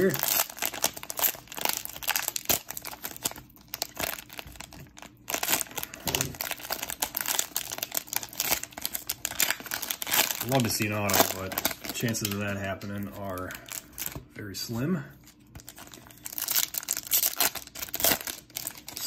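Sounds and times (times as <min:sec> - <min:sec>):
plastic wrapper tearing and crinkling: 0:00.0 - 0:14.3, 0:15.2 - 0:19.0.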